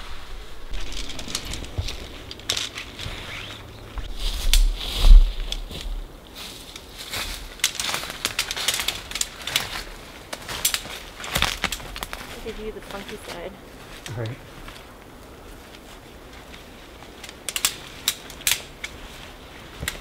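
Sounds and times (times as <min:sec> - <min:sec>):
nylon tent fabric rustling: 0:00.0 - 0:20.0
tent poles clicking together: 0:00.7 - 0:06.0, 0:06.6 - 0:13.4, 0:16.4 - 0:20.0.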